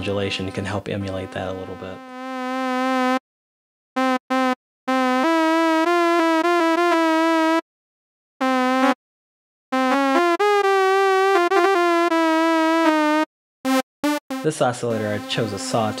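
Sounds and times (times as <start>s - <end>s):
buzzy synthesizer lead melody: 0.0s - 3.2s, 4.0s - 7.6s, 8.4s - 9.0s, 9.8s - 16.0s.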